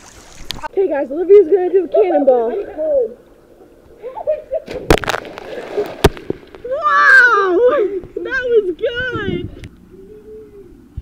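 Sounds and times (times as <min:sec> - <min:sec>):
water splashing: 0:00.0 - 0:00.7, 0:02.6 - 0:08.1
body smacking into water: 0:04.6 - 0:06.7.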